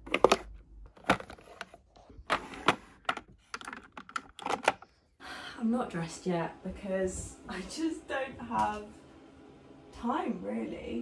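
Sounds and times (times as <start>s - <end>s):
makeup clattering in plastic drawers: 0.0s - 4.9s.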